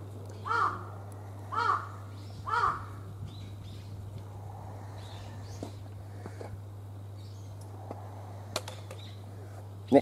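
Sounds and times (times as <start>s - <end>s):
faint low hum: 0.0s - 10.0s
crow cawing: 0.5s - 0.9s, 1.5s - 3.0s.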